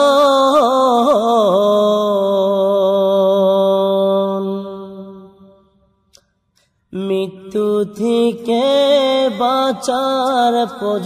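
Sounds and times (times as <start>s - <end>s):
person singing unaccompanied: 6.9s - 11.0s.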